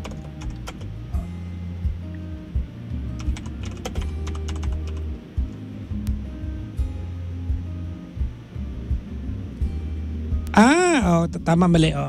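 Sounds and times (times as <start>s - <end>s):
keyboard typing clicks: 0.0s - 0.9s, 3.2s - 5.0s
low background music: 0.0s - 12.0s.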